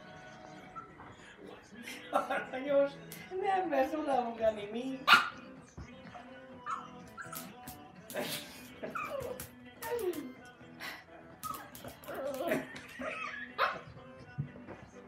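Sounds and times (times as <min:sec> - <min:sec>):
background music: 0:00.0 - 0:15.0
small dog whining and yipping: 0:06.7 - 0:07.4.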